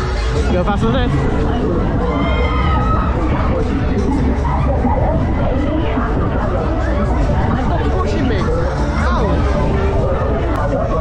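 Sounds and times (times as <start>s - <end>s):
crowd chatter: 0.0s - 11.0s
fairground music: 0.0s - 11.0s
ride low rumble: 0.0s - 11.0s.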